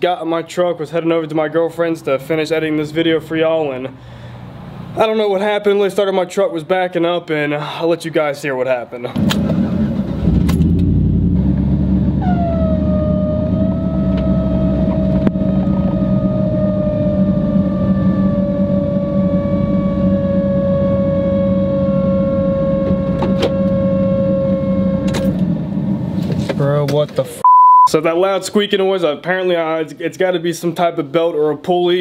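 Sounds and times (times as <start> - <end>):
pickup truck engine running: 10.0 - 19.4
loud squeaking squeal: 12.2 - 25.4.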